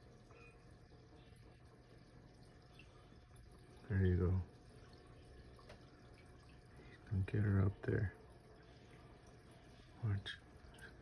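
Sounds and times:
aquarium filter bubbling: 0.0 - 11.0
faint low hum: 0.0 - 11.0.

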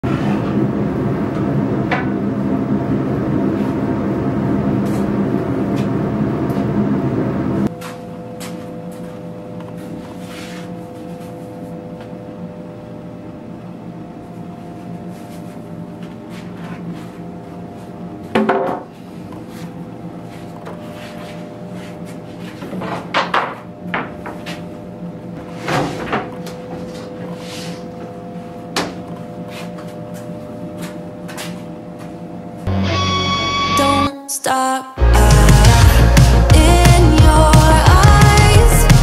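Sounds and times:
workshop machine humming: 0.0 - 34.1.

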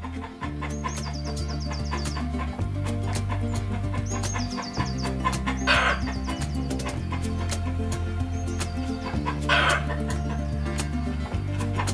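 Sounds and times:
instrumental background music: 0.0 - 11.9.

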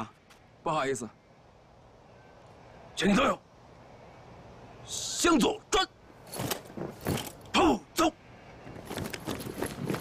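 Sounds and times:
boots knocking: 8.8 - 10.0.

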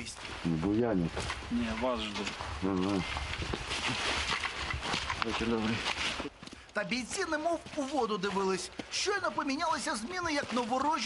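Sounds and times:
clothing and gear rustling: 0.0 - 11.0
shuffling footsteps: 0.0 - 11.0.

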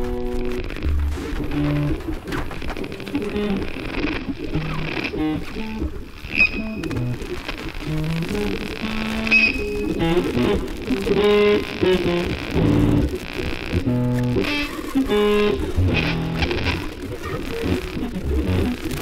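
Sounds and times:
jazz ensemble playing: 0.0 - 2.0, 4.4 - 17.0, 17.6 - 19.0
electric guitar picking: 0.0 - 19.0
high pings: 9.2 - 10.0.

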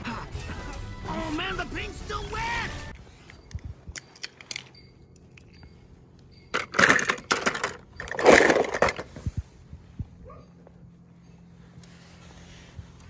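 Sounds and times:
toy cars clattering and scraping: 6.5 - 9.3.

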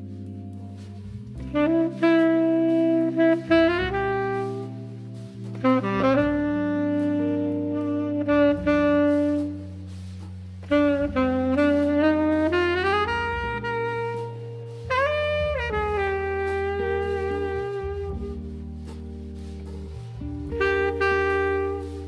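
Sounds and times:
tenor saxophone ballad melody: 0.0 - 22.0.

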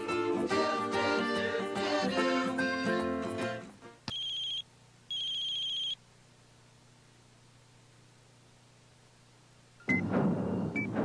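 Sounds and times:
electronic telephone ring beeps: 4.1 - 6.0.

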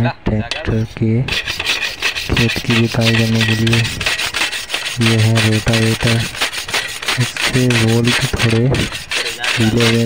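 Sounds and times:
hacksaw cutting metal: 0.5 - 10.0.

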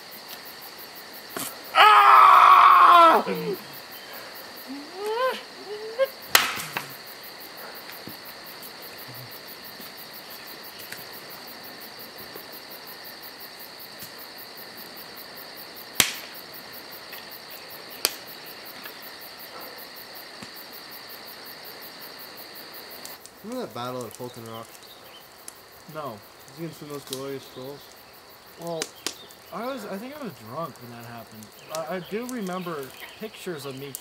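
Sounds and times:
insects chirring: 0.0 - 34.0.

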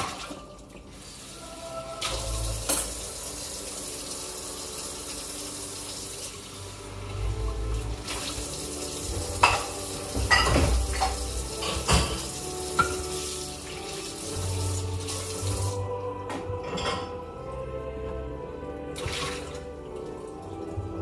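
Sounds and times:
dishes clinking together: 2.6 - 3.0, 9.4 - 13.1, 16.3 - 17.2
tap running into a sink: 8.0 - 13.3.

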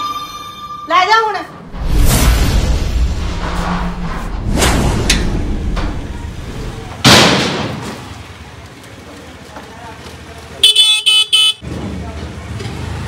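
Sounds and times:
loud rush of noise: 1.6 - 8.2
scooter horn honking: 10.6 - 11.6.

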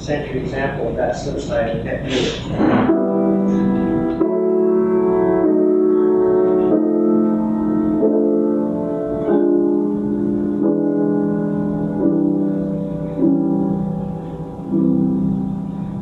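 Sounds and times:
grand piano playing chords: 0.0 - 16.0.

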